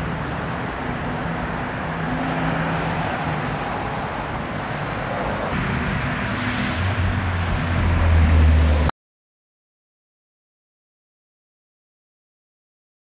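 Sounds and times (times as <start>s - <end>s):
low hum of vehicle engines: 0.0s - 8.9s
road traffic: 0.0s - 8.9s.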